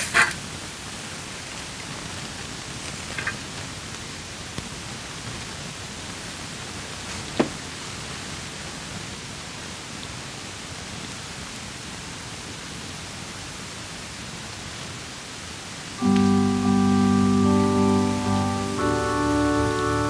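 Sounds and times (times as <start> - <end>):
room noise hiss: 0.0 - 20.0.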